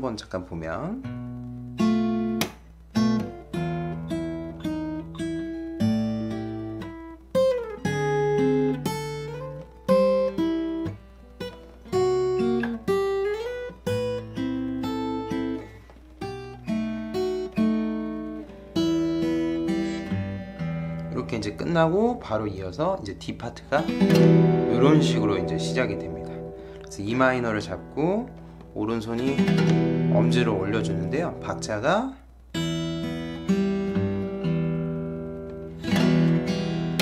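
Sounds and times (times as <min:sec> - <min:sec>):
fingerstyle acoustic guitar: 0:01.0 - 0:37.0.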